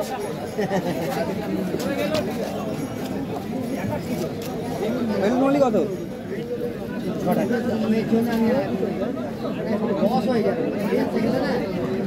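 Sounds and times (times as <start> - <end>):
market chatter: 0.0 - 12.0.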